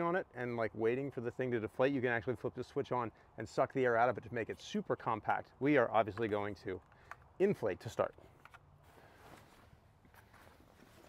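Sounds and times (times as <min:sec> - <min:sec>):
faint rustling of air mattress: 0:08.8 - 0:11.0.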